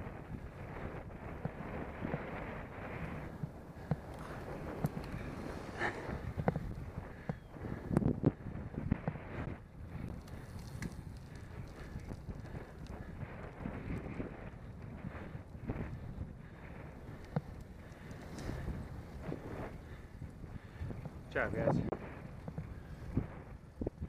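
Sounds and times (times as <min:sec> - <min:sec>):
wind buffeting microphone: 0:00.0 - 0:24.0.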